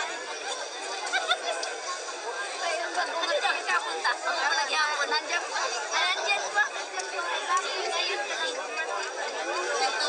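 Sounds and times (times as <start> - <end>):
overlapping chatter of people: 0.0 - 10.0.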